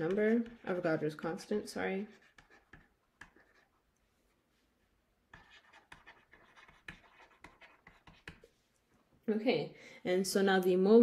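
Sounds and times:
stylus tapping and scraping on screen: 0:00.0 - 0:09.0.

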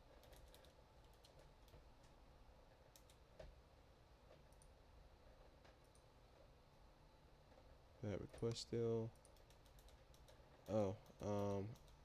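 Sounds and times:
keyboard and mouse clicks: 0:00.1 - 0:02.2, 0:02.9 - 0:03.6, 0:04.3 - 0:04.7, 0:08.3 - 0:12.0.

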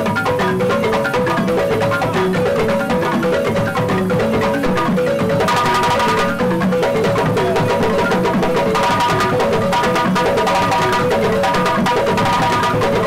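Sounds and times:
balafons playing: 0:00.0 - 0:13.0
djembe hand drum: 0:00.0 - 0:13.0.

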